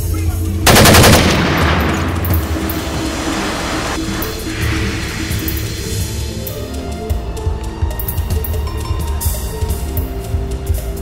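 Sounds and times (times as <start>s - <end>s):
background film music: 0.0s - 11.0s
automatic gunfire: 0.7s - 3.6s
rush of noise: 1.8s - 7.2s.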